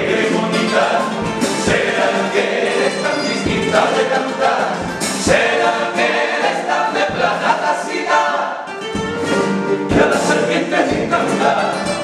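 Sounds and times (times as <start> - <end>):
male chorus singing: 0.0 - 8.7, 9.9 - 12.0
strummed guitar: 0.0 - 12.0.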